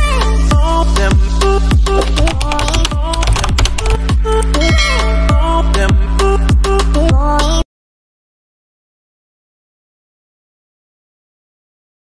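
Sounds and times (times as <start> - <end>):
electronic music with kick beat: 0.0 - 7.4
keyboard typing clicks: 2.0 - 4.8.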